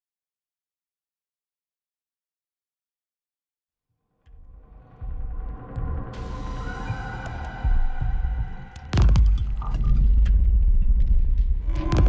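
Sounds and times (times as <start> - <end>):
low rumbling ambient drone: 4.4 - 12.0.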